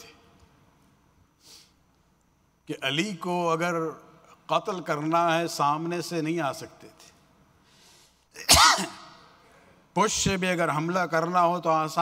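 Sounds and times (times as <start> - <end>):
loud sneeze: 8.4 - 9.2.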